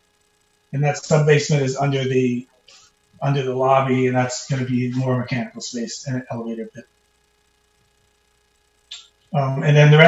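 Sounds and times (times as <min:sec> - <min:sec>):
faint steady hum: 0:00.0 - 0:10.0
soft hiss: 0:00.0 - 0:10.0.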